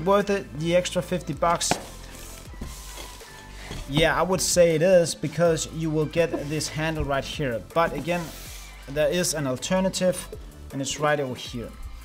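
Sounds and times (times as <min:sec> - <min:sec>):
faint background music: 0:00.0 - 0:12.0
foam case lid rustling: 0:01.5 - 0:04.2.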